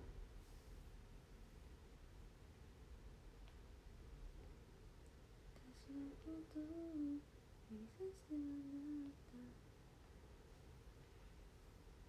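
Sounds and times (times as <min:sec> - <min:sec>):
woman softly humming: 0:05.6 - 0:09.6.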